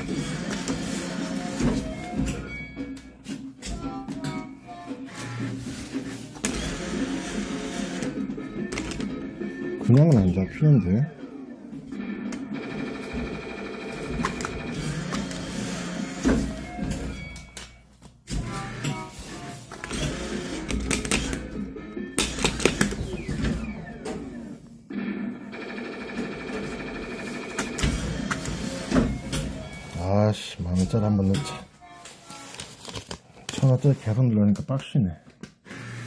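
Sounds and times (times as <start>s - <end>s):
electronic arcade music: 0.0s - 17.6s, 18.4s - 32.0s.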